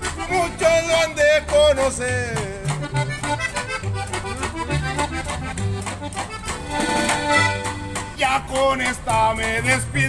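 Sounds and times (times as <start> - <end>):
accordion melody: 0.0 - 10.0
plucked upright bass: 0.0 - 10.0
rhythmic guitar strumming: 0.0 - 10.0.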